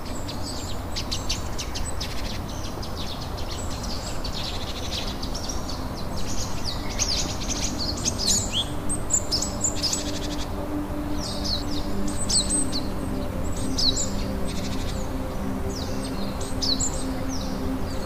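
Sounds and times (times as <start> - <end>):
low musical drone: 0.0 - 18.0
songbirds chirping: 0.0 - 18.0.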